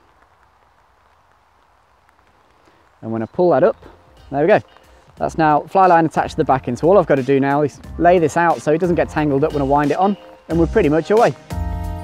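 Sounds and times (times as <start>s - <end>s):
soft ticks: 0.0s - 3.0s
faint outdoor hiss: 0.0s - 12.0s.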